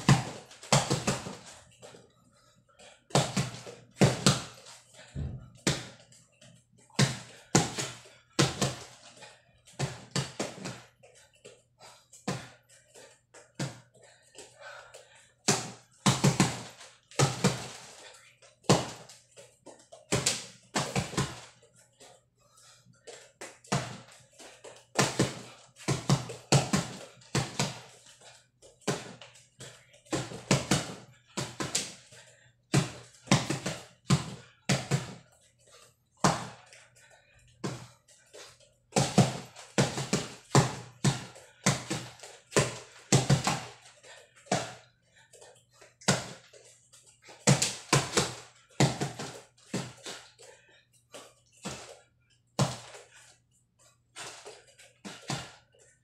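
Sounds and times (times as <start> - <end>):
fists punching a mattress: 0.0 - 1.4, 15.5 - 17.7, 39.0 - 43.8, 47.4 - 50.0.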